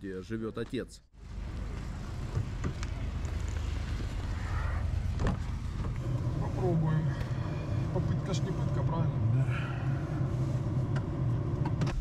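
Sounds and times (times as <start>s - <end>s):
car engine rumbling: 1.2s - 12.0s.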